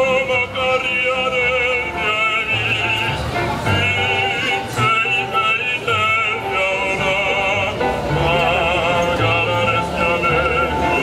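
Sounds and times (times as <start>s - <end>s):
piano: 0.0s - 11.0s.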